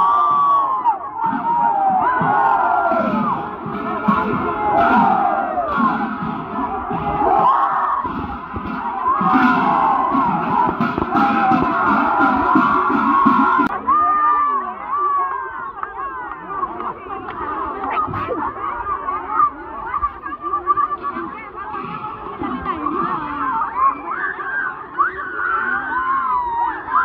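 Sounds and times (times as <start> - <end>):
crowd shouting and cheering: 0.0 - 27.0.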